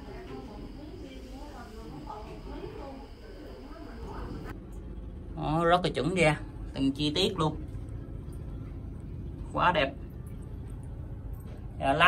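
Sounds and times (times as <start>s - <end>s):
faint indistinct voices: 0.0s - 4.6s
low steady rumble: 0.0s - 12.0s.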